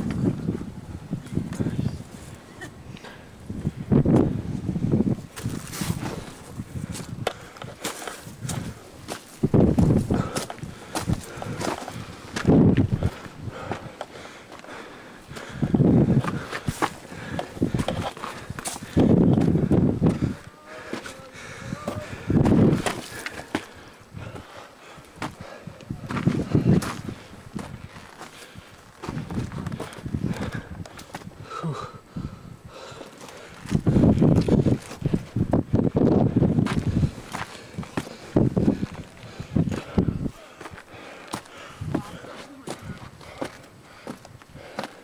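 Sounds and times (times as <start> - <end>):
footsteps on loose stone: 5.2 - 21.2, 21.8 - 31.3, 33.0 - 45.0.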